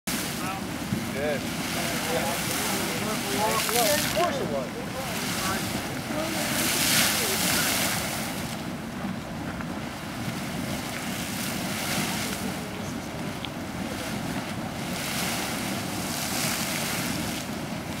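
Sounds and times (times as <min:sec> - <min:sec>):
geyser water splashing: 0:00.1 - 0:18.0
wind buffeting microphone: 0:00.1 - 0:18.0
steam hissing: 0:05.0 - 0:18.0.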